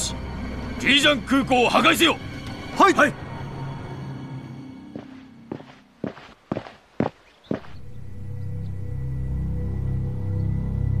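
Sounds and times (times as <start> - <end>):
low background music: 0.0 - 6.3, 7.6 - 11.0
footsteps: 4.9 - 7.8.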